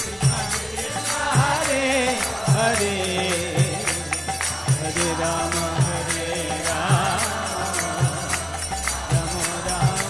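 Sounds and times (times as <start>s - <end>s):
small hand cymbals ringing: 0.0s - 10.0s
voices chanting a melody: 0.0s - 10.0s.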